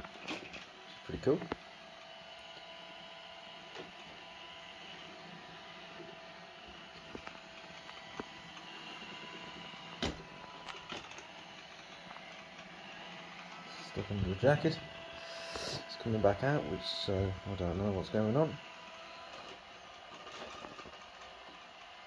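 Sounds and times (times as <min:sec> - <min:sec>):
robot vacuum motor whine: 0:00.0 - 0:22.0.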